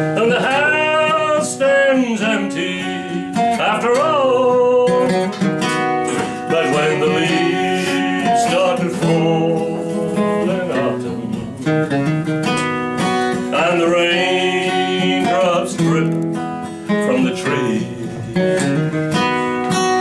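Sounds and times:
man singing country ballad: 0.0s - 12.3s, 13.0s - 19.8s
acoustic guitar strummed and picked: 0.0s - 20.0s.

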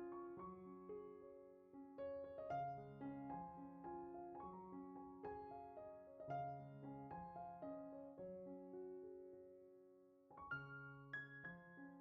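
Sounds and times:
quiet piano music: 0.0s - 12.0s.

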